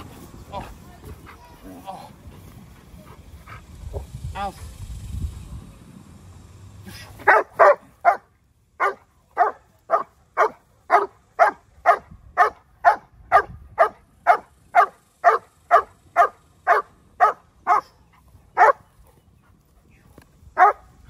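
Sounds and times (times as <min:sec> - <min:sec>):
dog barking: 0:07.2 - 0:17.9, 0:18.6 - 0:18.8, 0:20.6 - 0:20.8.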